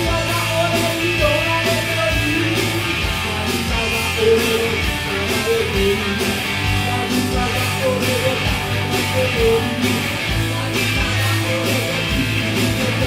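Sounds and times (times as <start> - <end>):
electric guitar: 0.0 - 13.0
held bass notes: 0.0 - 13.0
steady drum beat: 0.0 - 13.0.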